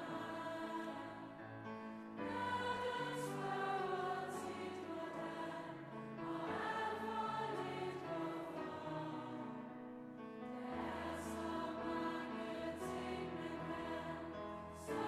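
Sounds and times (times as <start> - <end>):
choir and crowd singing: 0.0 - 1.4, 2.2 - 9.6, 10.5 - 15.0
piano accompaniment: 0.0 - 15.0.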